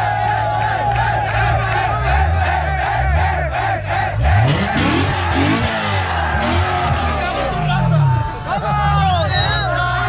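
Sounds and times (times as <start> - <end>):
crowd shouting and cheering: 0.0 - 10.0
car engine revving: 0.2 - 9.5.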